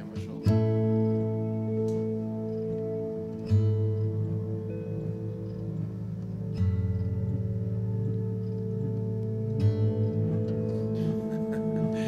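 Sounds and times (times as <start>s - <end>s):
held drone tone: 0.0s - 12.0s
strummed acoustic guitar chord: 0.0s - 12.0s.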